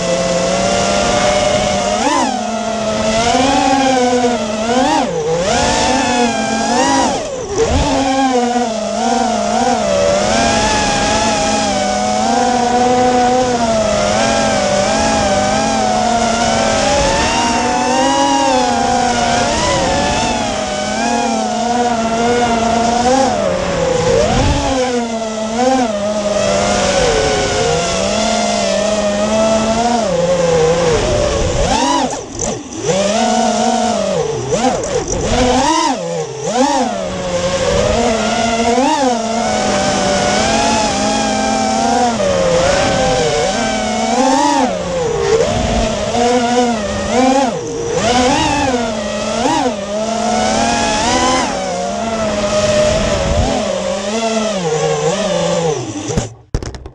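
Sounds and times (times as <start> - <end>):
drone motors whining: 0.0 - 56.9.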